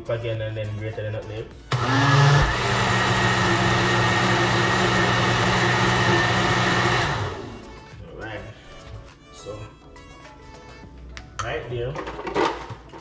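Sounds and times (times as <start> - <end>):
blender motor running: 1.7 - 7.6.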